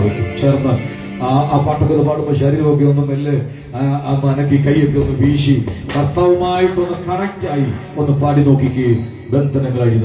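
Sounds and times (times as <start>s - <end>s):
man praying through microphone: 0.0s - 10.0s.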